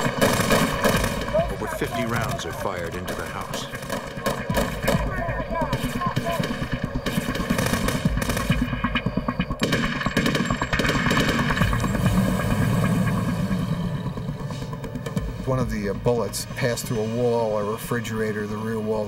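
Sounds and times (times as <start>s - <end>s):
rapid gunfire: 0.0s - 12.8s.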